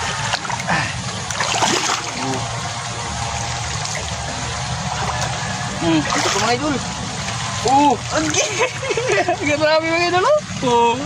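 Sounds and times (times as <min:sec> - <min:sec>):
water trickling and dripping: 0:00.1 - 0:11.0.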